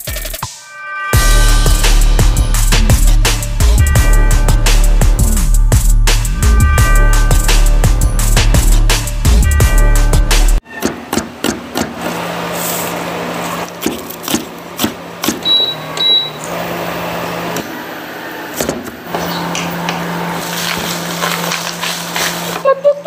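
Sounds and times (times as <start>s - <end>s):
music with a beat: 0.0s - 10.6s
short high beeps: 15.4s - 16.4s.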